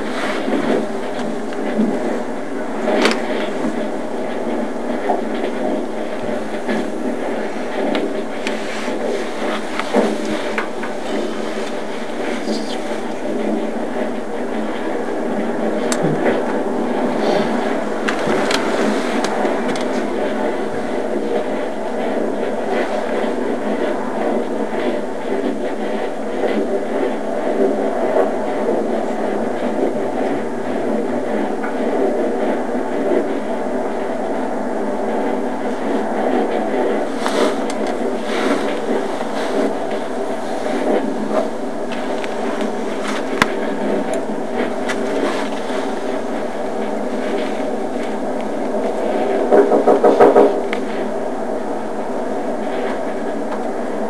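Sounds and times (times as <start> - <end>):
rapid knocks: 49.4 - 50.7.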